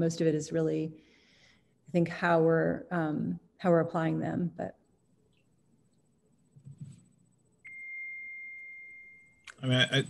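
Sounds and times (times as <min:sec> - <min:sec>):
high electronic beep: 0:07.7 - 0:09.4.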